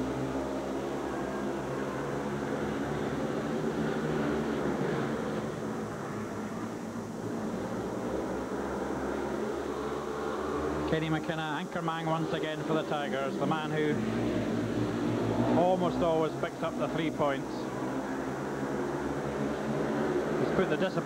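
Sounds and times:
motorcycles racing: 0:00.0 - 0:21.0.

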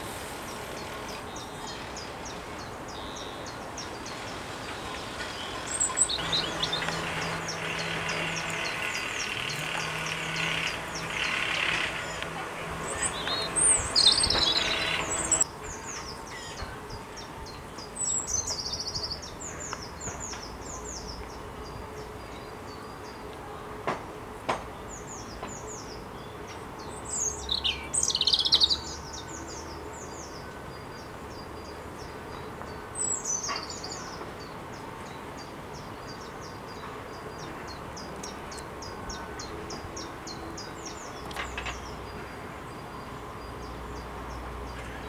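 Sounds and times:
robin singing: 0:00.0 - 0:23.3, 0:24.9 - 0:45.0
steady low hum: 0:06.2 - 0:15.4.

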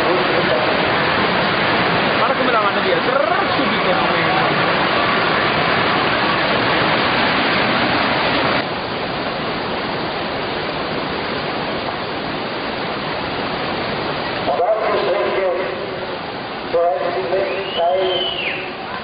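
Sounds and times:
whitewater rapids rushing: 0:00.0 - 0:19.0.

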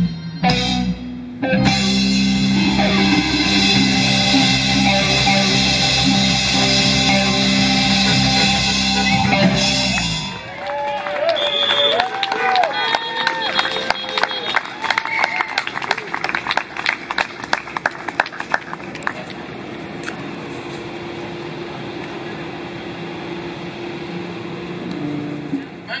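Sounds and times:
audience voices: 0:02.4 - 0:20.8
outdoor background hum: 0:02.4 - 0:26.0
audience applause: 0:10.0 - 0:19.5.

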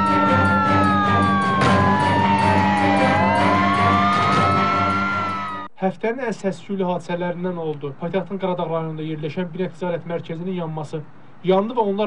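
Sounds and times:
fire engine sirens wailing: 0:00.0 - 0:05.7
steady low drone: 0:00.0 - 0:05.7.

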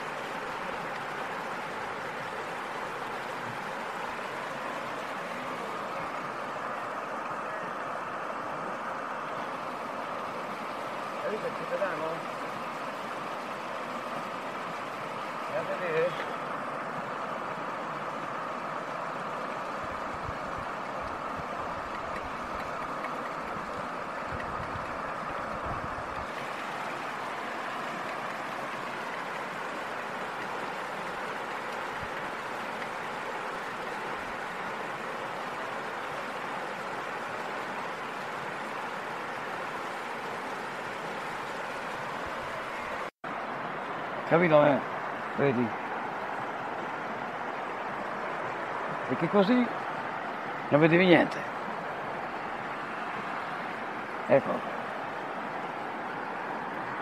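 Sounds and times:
river water rushing: 0:00.0 - 0:57.0.

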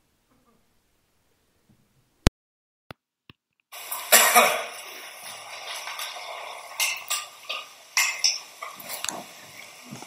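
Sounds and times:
room noise: 0:02.9 - 0:10.0
person coughing: 0:04.1 - 0:04.7.

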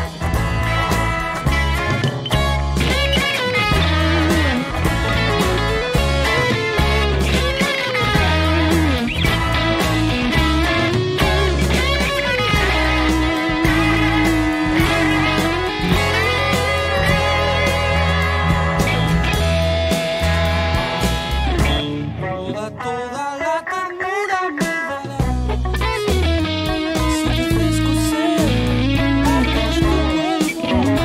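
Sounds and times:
electric guitar lead line: 0:00.0 - 0:31.0
rock band with bass and drums: 0:00.0 - 0:31.0.

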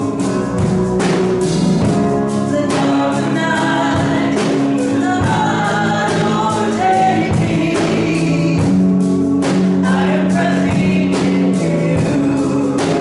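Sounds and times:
band with steady drum beat: 0:00.0 - 0:13.0
voices singing together: 0:02.3 - 0:13.0.

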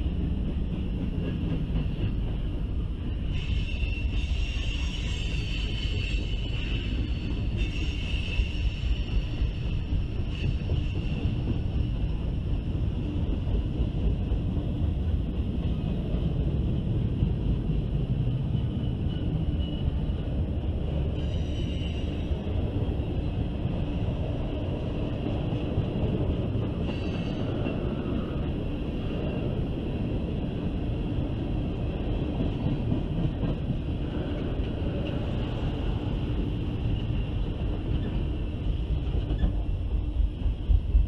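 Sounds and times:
freight train wheels rumbling on track: 0:00.0 - 0:41.0
high-pitched wheel squeals: 0:03.4 - 0:09.5, 0:21.1 - 0:22.3, 0:26.8 - 0:27.6.

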